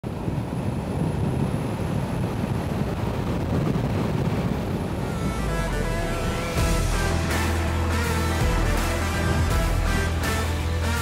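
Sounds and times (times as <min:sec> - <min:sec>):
road and engine noise: 0:00.0 - 0:11.0
wind buffeting microphone: 0:00.0 - 0:11.0
music: 0:05.0 - 0:11.0.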